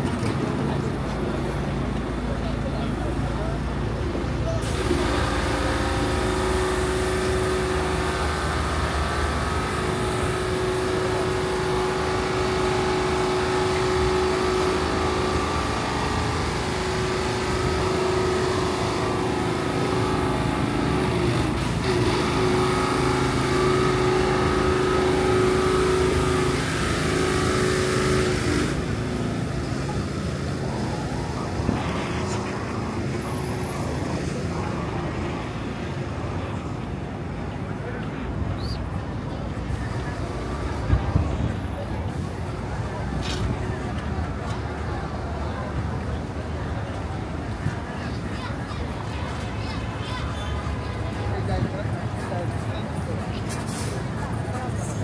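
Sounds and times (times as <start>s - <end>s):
city street traffic: 0.0s - 55.0s
pitched engine hum: 0.0s - 55.0s.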